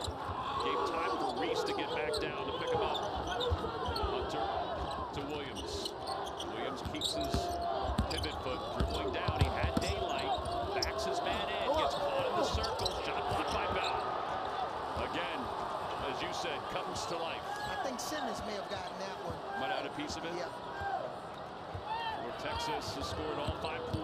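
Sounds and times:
sneakers squeaking on floor: 0.0 - 11.0, 11.7 - 14.1.

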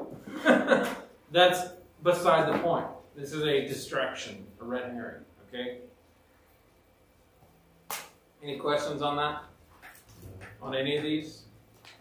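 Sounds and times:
sharp click: 7.9 - 8.2.

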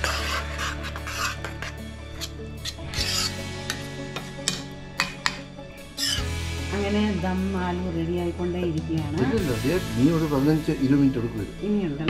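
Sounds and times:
steel spoon scraping iron pan: 0.0 - 6.4.

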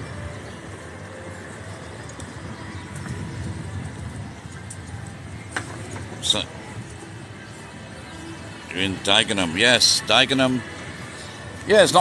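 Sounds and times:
background traffic: 0.0 - 12.0
scooter road noise: 0.0 - 12.0.

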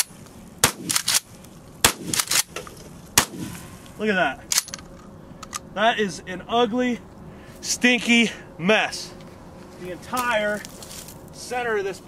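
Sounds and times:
shotgun shots: 0.6 - 1.2, 1.8 - 2.5, 3.2 - 3.6.

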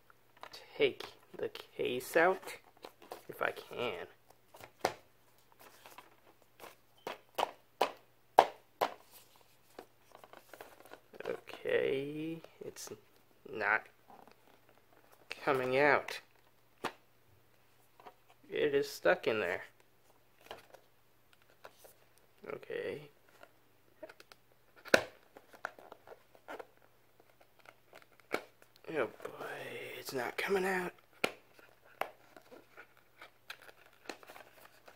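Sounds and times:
plastic case clicking and rubbing: 31.1 - 34.9.

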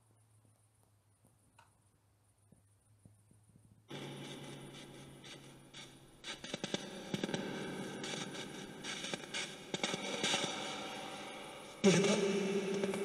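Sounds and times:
crackling clicks: 0.4 - 1.8
radio static hissing: 3.9 - 13.0.

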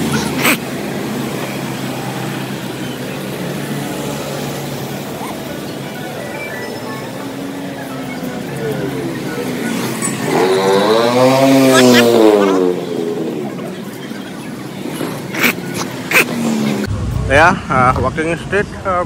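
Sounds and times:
people in street: 0.0 - 19.0
traffic: 0.0 - 19.0.

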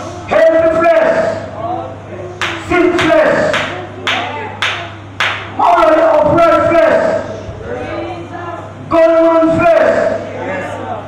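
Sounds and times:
sound system hum: 0.0 - 11.0
hand claps in steady beat: 2.4 - 5.6.

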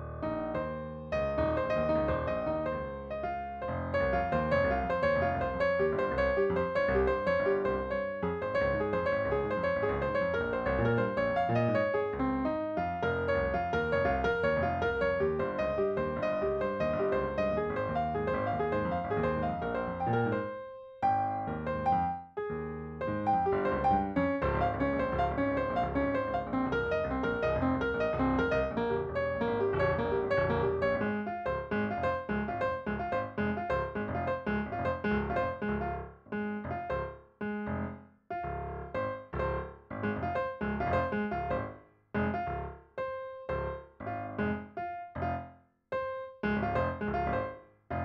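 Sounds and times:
piano music on keyboard: 0.0 - 48.0.

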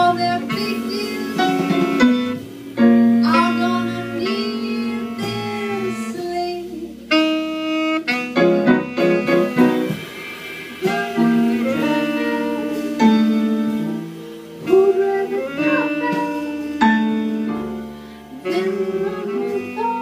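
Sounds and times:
jazz combo playing: 0.0 - 20.0
piano: 0.0 - 20.0.

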